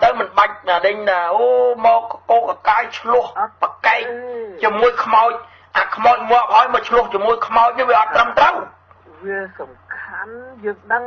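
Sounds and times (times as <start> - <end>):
man speaking fast: 0.0 - 8.8
low electrical hum: 0.0 - 11.0.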